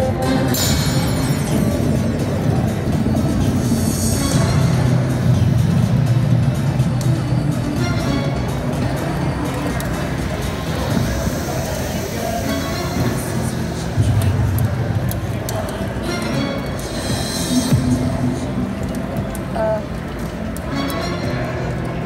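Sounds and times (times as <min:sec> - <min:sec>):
slot machine music and effects: 0:00.0 - 0:06.7
indistinct voices: 0:00.0 - 0:22.0.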